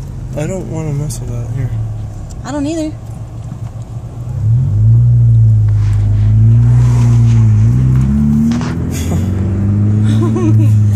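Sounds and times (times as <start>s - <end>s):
car engine accelerating: 0.0s - 10.9s.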